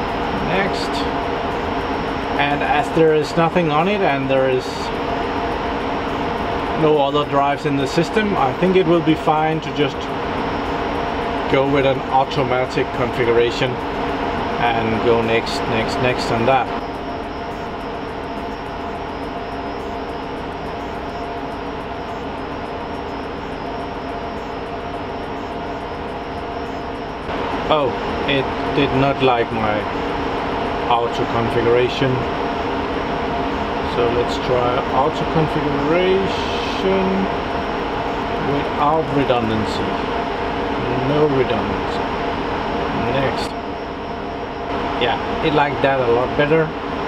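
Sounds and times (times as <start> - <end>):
faint steady hum: 0.0 - 47.0
server cooling fans rushing: 0.0 - 47.0.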